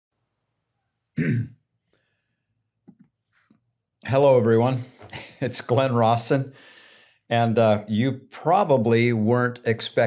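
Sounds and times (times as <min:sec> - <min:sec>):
man clearing his throat: 0:01.2 - 0:01.6.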